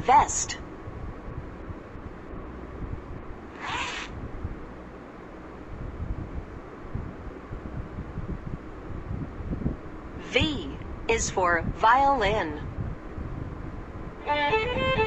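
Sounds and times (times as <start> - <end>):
low background rumble: 0.0 - 15.0
zipper swish: 3.5 - 4.2.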